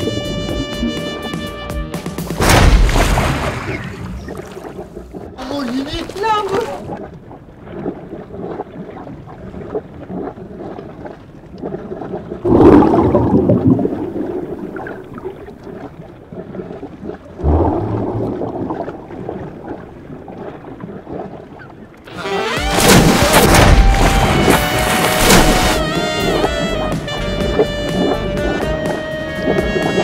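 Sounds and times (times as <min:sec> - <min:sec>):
muffled underwater water rush: 0:00.0 - 0:01.4, 0:02.3 - 0:22.1, 0:22.8 - 0:30.0.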